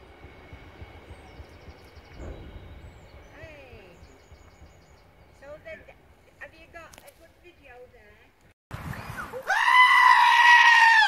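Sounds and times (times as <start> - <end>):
freight train rumble: 0.0 - 8.2.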